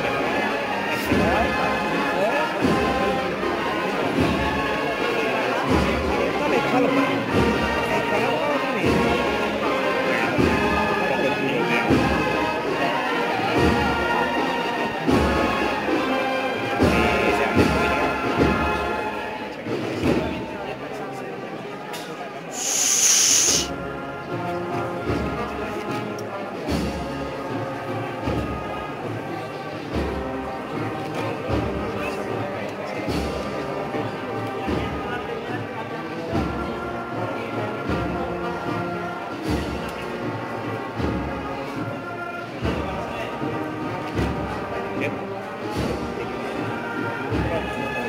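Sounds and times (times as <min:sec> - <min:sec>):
brass band slow march: 0:00.0 - 0:48.0
crowd murmuring: 0:00.0 - 0:48.0
short loud hiss: 0:22.5 - 0:23.7.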